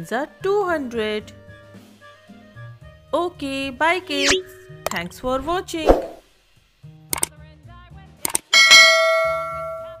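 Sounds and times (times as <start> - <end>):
quick clicks: 7.1 - 7.3, 8.2 - 8.5
notification bell ding: 8.6 - 10.0.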